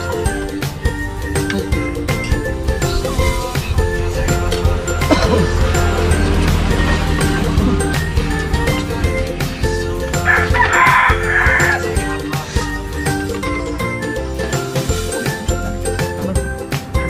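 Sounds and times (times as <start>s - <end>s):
background music with steady beat: 0.0s - 17.0s
rooster crowing: 10.2s - 12.2s.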